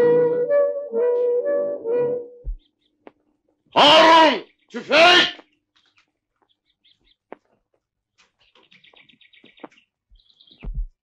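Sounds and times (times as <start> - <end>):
man shouting: 3.8 - 5.4
faint bird chirps: 8.3 - 11.0.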